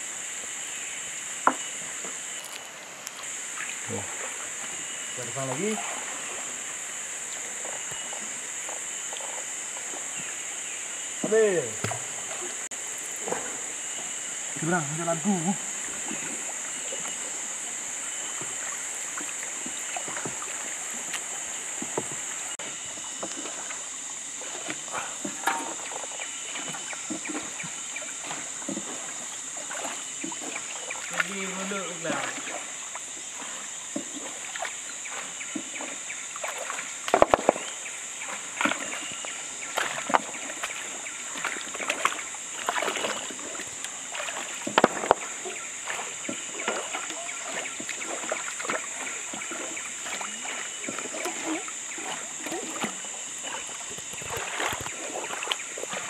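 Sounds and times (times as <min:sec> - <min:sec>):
water sloshing and splashing: 0:00.0 - 0:56.0
loud splashes: 0:28.2 - 0:34.8, 0:35.8 - 0:56.0.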